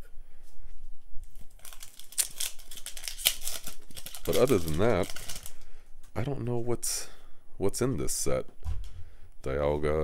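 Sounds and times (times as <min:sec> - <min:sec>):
foil wrapper crinkling and tearing: 0:01.2 - 0:05.7.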